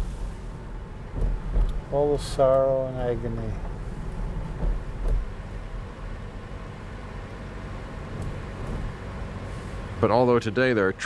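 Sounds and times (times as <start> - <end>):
car engine and road noise: 0.0 - 11.0
soft bumps: 1.0 - 1.9, 3.1 - 5.7.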